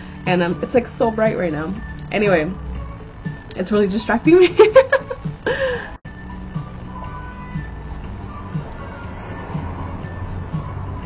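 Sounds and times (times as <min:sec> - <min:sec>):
quiet background music: 0:00.0 - 0:11.0
person laughing: 0:04.4 - 0:06.0.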